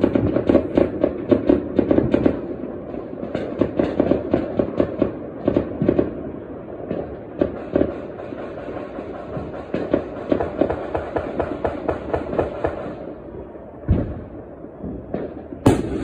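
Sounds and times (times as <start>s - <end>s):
fireworks cracking: 0.0s - 16.0s
firework boom: 15.6s - 16.0s.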